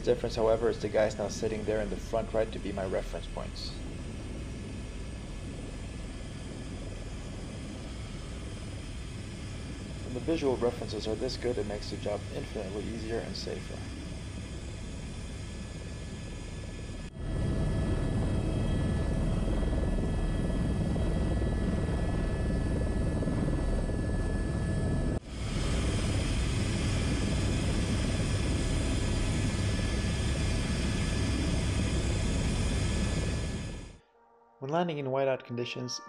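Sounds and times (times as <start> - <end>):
helicopter turbine and rotor: 0.0 - 34.0.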